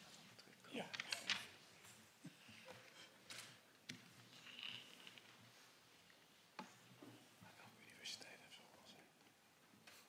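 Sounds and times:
faint whispering: 7.2s - 9.4s.

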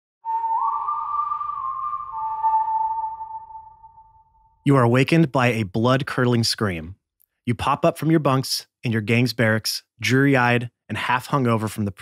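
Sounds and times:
higher tone sliding up: 0.2s - 4.6s
whistle-like pure tone: 0.2s - 4.6s.

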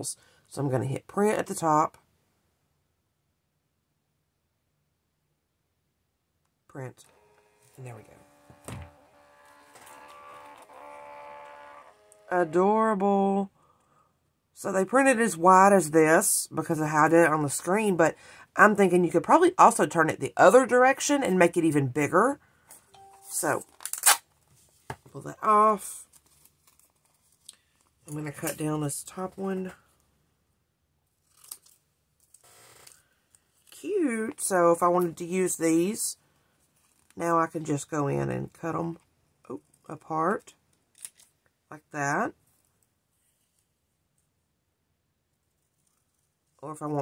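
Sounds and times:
thermal printer motor whining: 7.1s - 12.3s
soft rustle: 23.8s - 25.2s, 25.9s - 28.5s, 36.2s - 37.2s, 42.4s - 44.3s, 45.3s - 46.6s.

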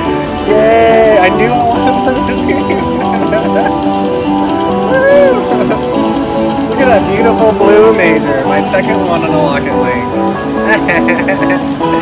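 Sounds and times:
slot machine jackpot music: 0.0s - 12.0s.

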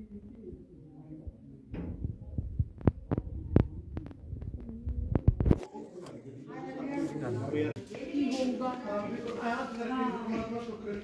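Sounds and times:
low rumble on phone microphone: 0.0s - 5.6s.

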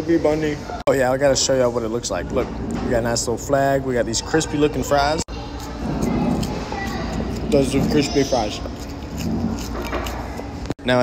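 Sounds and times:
cafeteria rumble: 0.0s - 11.0s
man speaking: 7.5s - 8.7s.

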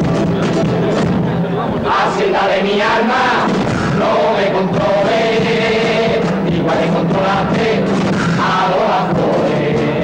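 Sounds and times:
chorus singing in unison: 1.8s - 10.0s.

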